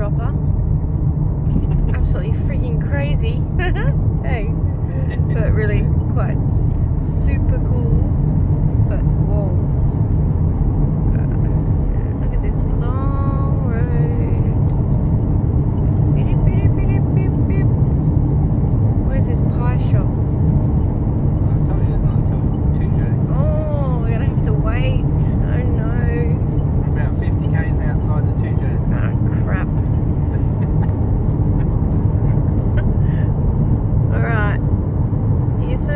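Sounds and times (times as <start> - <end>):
car road and engine rumble: 0.0 - 35.9
indistinct voices: 21.5 - 33.3.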